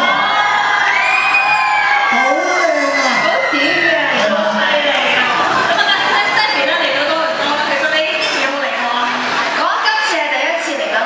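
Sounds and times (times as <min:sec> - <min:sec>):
crowd cheering and screaming: 0:00.0 - 0:10.1.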